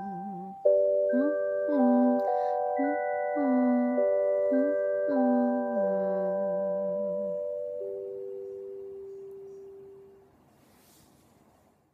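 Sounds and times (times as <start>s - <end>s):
faint noise: 0.0s - 11.9s.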